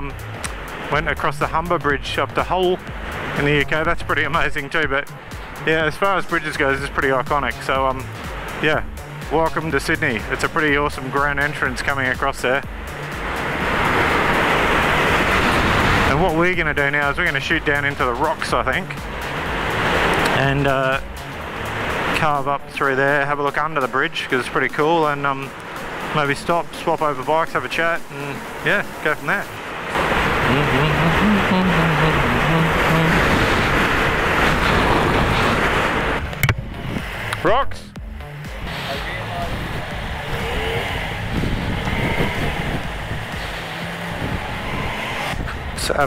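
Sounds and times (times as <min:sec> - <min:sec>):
wind and road noise: 0:00.0 - 0:46.0
motorcycle engine: 0:29.4 - 0:36.8, 0:37.9 - 0:46.0.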